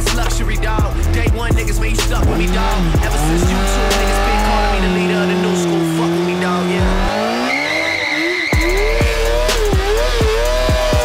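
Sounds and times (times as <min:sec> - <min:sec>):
motorcycle engine at high revs: 0:00.0 - 0:11.0
music track: 0:00.0 - 0:11.0
tyre squealing on pavement: 0:03.2 - 0:11.0.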